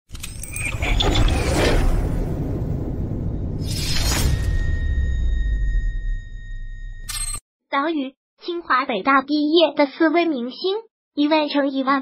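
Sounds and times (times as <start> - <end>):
low rumble: 0.8 - 7.1.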